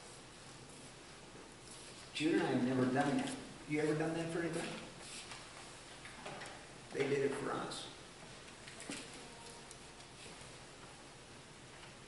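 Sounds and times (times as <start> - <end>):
man talking: 2.2 - 4.9, 6.9 - 8.0.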